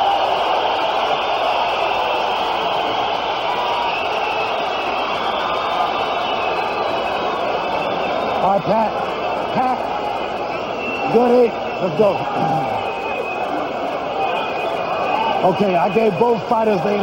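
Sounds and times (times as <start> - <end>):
arena crowd cheering: 0.0 - 17.0.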